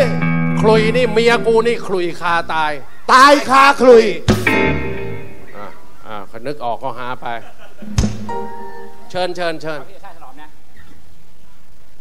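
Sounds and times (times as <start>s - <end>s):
live band chord: 0.0s - 2.2s, 4.3s - 5.6s, 7.8s - 9.6s
man speaking over pa: 0.0s - 4.1s.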